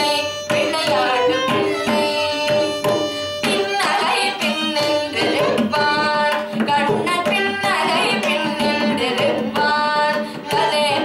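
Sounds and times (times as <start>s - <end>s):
mridangam strokes: 0.0s - 11.0s
violin: 0.0s - 11.0s
woman singing: 0.0s - 11.0s.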